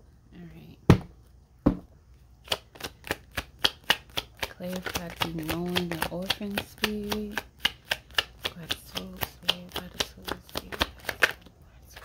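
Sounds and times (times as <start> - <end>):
cards being shuffled: 2.4 - 12.0.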